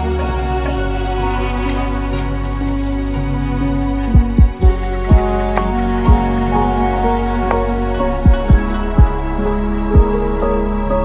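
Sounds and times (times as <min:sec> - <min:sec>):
sustained keyboard chords: 0:00.0 - 0:11.0
deep kick drums: 0:04.1 - 0:06.7, 0:08.0 - 0:10.4
lofi hip hop beat: 0:04.1 - 0:11.0.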